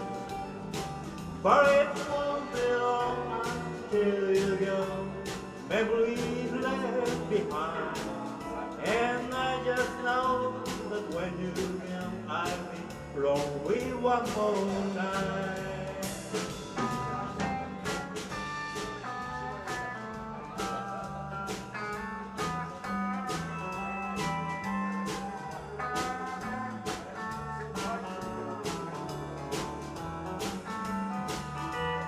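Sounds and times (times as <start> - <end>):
drum kit beat: 0.0 - 32.0
electric bass: 0.0 - 32.0
steel guitar melody: 0.0 - 32.0
strummed guitars: 0.0 - 32.0.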